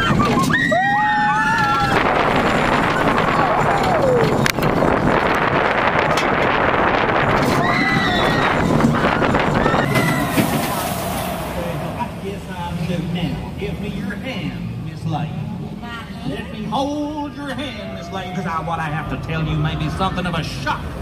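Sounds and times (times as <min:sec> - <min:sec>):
riders screaming: 0:00.0 - 0:04.4, 0:07.4 - 0:11.8
roller coaster train rushing: 0:00.0 - 0:16.0.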